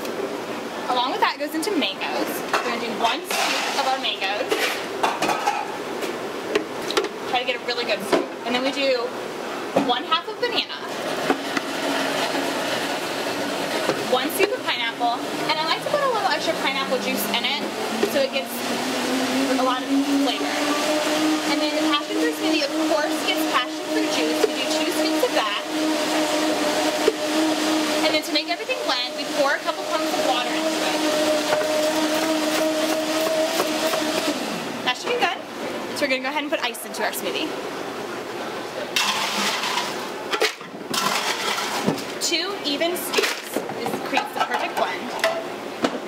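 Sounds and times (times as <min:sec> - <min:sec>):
blender motor running: 0:10.8 - 0:35.2.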